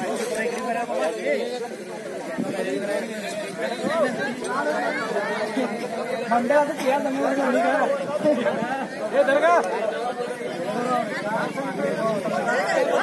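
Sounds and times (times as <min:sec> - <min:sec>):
men talking over one another: 0:00.0 - 0:13.0.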